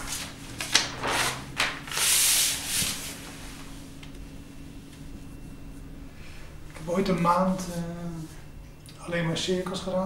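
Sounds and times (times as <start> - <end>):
paper sheets sliding and swishing: 0.0 - 3.8.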